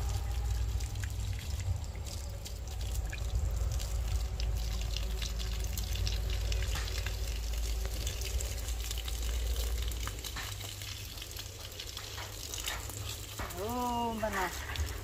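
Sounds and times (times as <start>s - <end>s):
low rumble: 0.0s - 10.3s
hose water splashing on soil: 0.0s - 15.0s.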